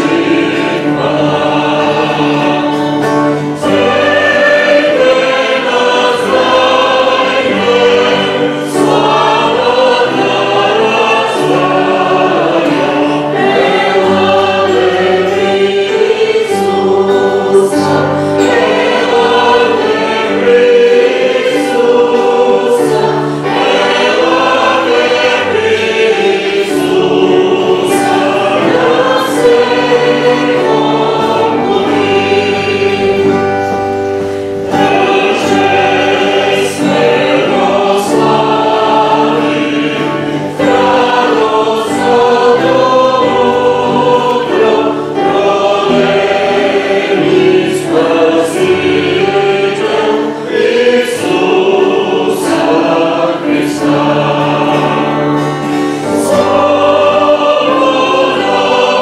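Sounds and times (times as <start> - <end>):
acoustic guitar: 0.0 - 59.0
congregation singing worship song: 0.0 - 59.0
man and woman leading singing: 0.0 - 59.0.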